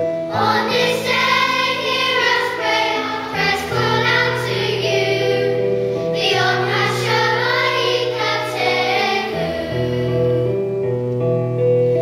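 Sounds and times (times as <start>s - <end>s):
children's choir singing: 0.2s - 10.6s.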